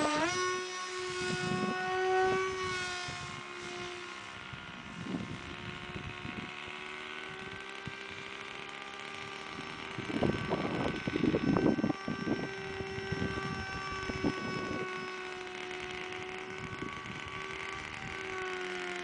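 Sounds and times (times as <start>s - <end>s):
wind buffeting microphone: 0.0s - 8.3s, 9.2s - 18.5s
electric motor propeller whine: 0.0s - 19.0s.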